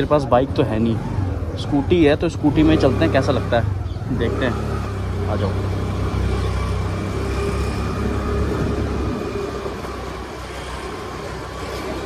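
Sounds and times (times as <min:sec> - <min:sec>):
motor scooter engine hum: 0:00.0 - 0:12.0.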